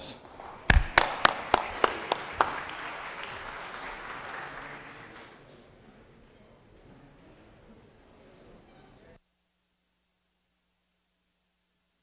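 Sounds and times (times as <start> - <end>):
scattered room clapping: 0.0 - 5.6
close loud hand claps: 0.2 - 5.4.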